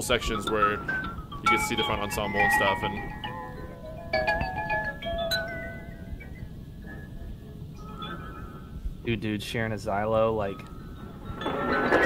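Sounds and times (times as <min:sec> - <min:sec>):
xylophone and marimba notes: 0:00.0 - 0:06.2.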